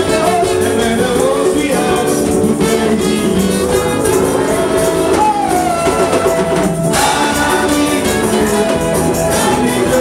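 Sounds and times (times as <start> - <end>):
keyboard accompaniment: 0.0 - 10.0
voices singing gospel: 0.0 - 10.0.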